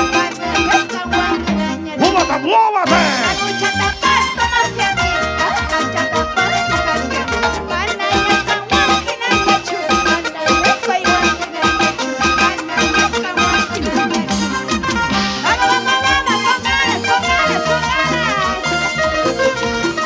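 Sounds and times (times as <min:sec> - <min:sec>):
latin dance-band music: 0:00.0 - 0:20.0.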